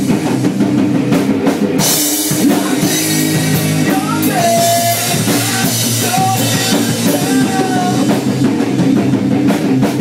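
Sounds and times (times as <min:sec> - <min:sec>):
drum kit: 0:00.0 - 0:10.0
electric guitar chords: 0:00.0 - 0:10.0
rock band playing live: 0:00.0 - 0:10.0.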